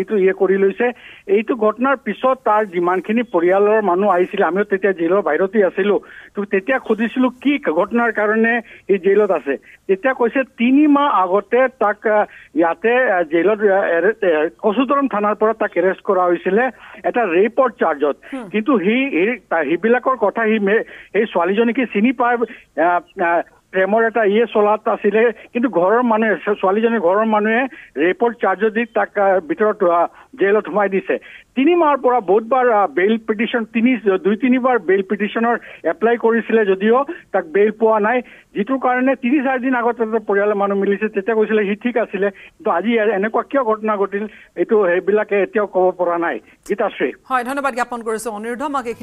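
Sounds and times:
man talking over phone: 0:00.0 - 0:12.2, 0:12.8 - 0:31.1
person talking over telephone line: 0:18.0 - 0:19.5, 0:47.3 - 0:49.0.

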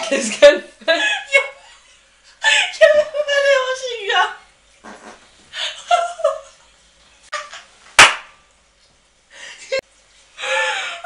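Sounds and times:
sharp smack: 0:08.0 - 0:08.4.

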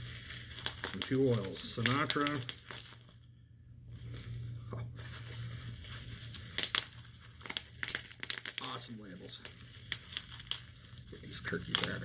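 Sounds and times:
packaging crinkling and rustling: 0:00.0 - 0:03.3, 0:03.9 - 0:12.0.

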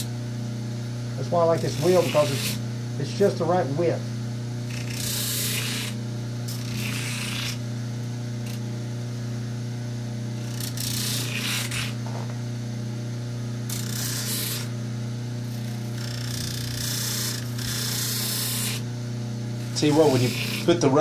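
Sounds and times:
bench grinder motor humming: 0:00.0 - 0:21.0
rubber pad grinding on wheel: 0:04.7 - 0:07.6, 0:10.4 - 0:12.1, 0:13.7 - 0:14.7, 0:15.5 - 0:18.9, 0:19.6 - 0:21.0.

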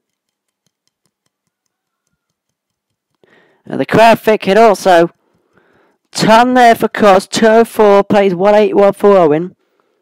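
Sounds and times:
faint fast ticking: 0:00.0 - 0:06.2.

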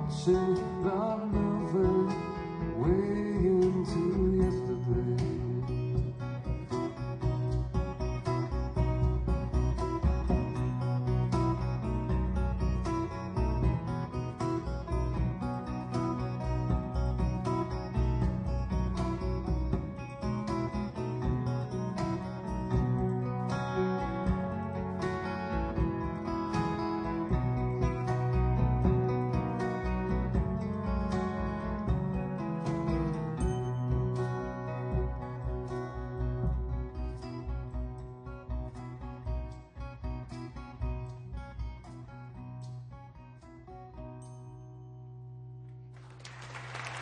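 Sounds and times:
live band playing slow song: 0:00.0 - 0:42.5
strummed guitar: 0:00.0 - 0:46.2.

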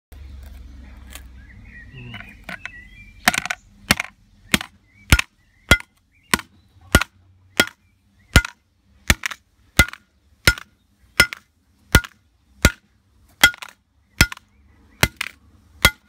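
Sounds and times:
crowbar striking metal clanks: 0:03.3 - 0:07.8.

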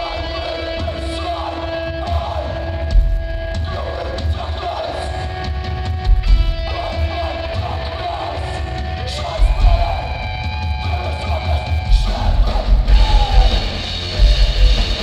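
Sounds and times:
distorted electric guitars: 0:00.0 - 0:15.0
sludge metal band playing live: 0:00.0 - 0:15.0
heavy pulsing low bass: 0:11.8 - 0:15.0.

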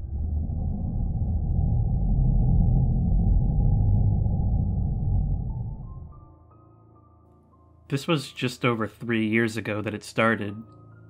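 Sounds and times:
low ambient drone: 0:00.0 - 0:06.6.

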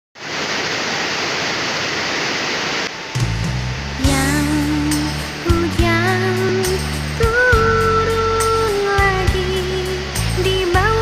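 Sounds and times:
heavy rain: 0:00.2 - 0:11.0
wavering melody: 0:03.0 - 0:10.2
bass line: 0:03.2 - 0:11.0.

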